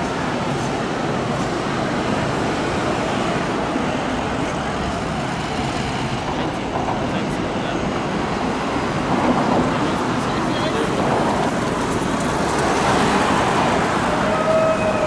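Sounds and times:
city street traffic: 0.0 - 15.0.

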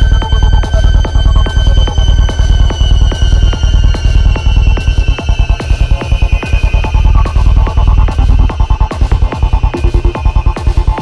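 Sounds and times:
pounding kick drum: 0.0 - 11.0
throbbing electronic bass: 0.0 - 11.0.

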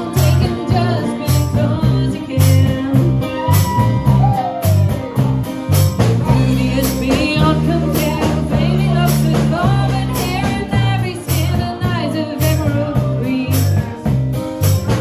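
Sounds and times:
woman singing: 0.0 - 4.2, 6.2 - 14.1
drum kit: 0.0 - 15.0
electric bass: 0.0 - 15.0.

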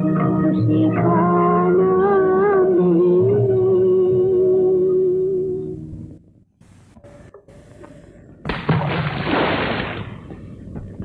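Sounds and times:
soft instrumental accompaniment: 0.0 - 6.3
soundtrack hiss and crackle: 6.6 - 8.4.

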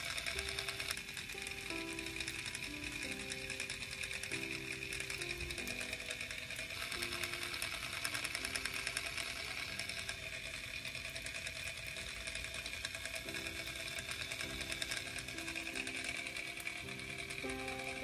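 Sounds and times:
toy blender motor whirring: 0.0 - 18.0.

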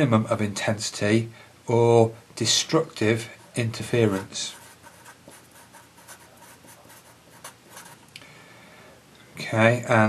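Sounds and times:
marker pen scratching on paper: 3.2 - 8.0.

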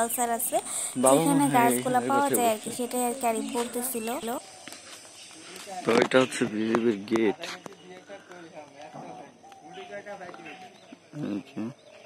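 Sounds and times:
background voices: 0.0 - 4.4.

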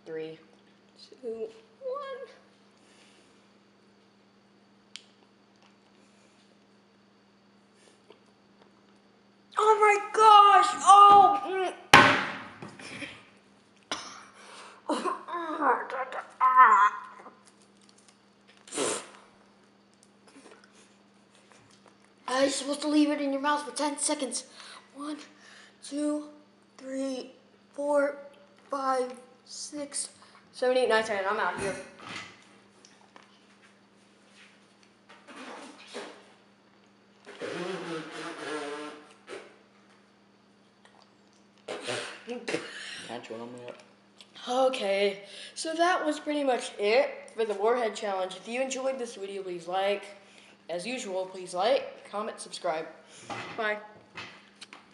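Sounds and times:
sharp cough: 13.9 - 14.4, 41.7 - 42.9
boy whining: 14.9 - 17.3.

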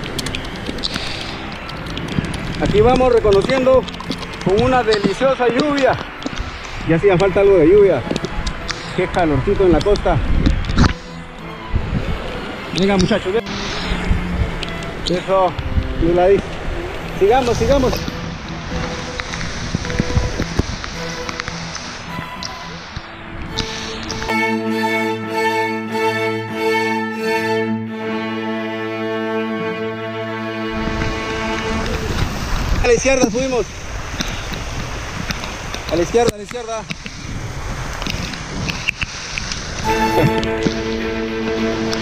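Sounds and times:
bike tyres on wet trail: 0.0 - 24.3, 30.7 - 42.0
rushing wind noise on microphone: 0.0 - 24.4, 30.6 - 42.0
faint background music: 0.0 - 32.2.

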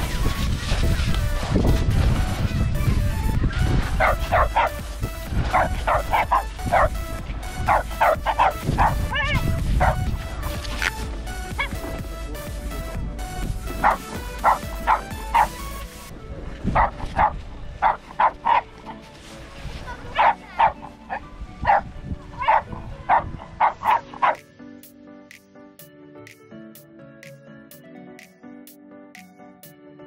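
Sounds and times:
background music: 0.0 - 30.0
small dog yipping: 7.7 - 10.0, 20.2 - 24.4.

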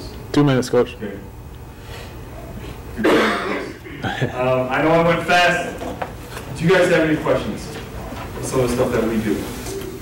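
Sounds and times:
person coughing: 3.0 - 4.4.

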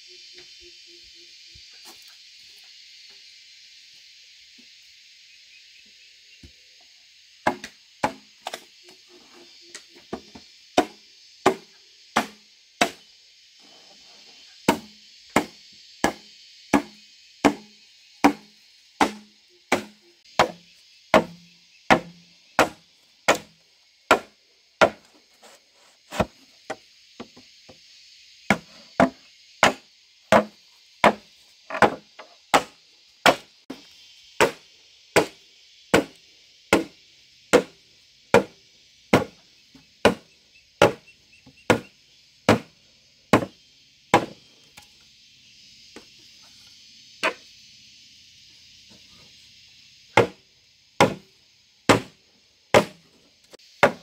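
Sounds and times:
tool chopping bamboo: 7.4 - 8.6, 10.8 - 13.0, 14.7 - 23.5, 24.1 - 25.1, 26.1 - 26.3, 28.5 - 33.5, 34.4 - 34.6, 35.2 - 36.9, 37.5 - 37.7, 38.3 - 38.5, 39.1 - 39.3, 40.0 - 40.2, 40.8 - 41.0, 42.5 - 42.7, 43.3 - 43.5, 44.1 - 44.4, 50.2 - 50.4, 51.0 - 51.2, 51.9 - 53.0, 53.8 - 54.0.

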